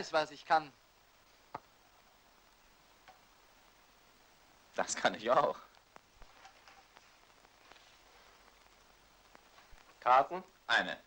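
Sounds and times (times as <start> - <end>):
faint soundtrack hiss: 0.0 - 11.0.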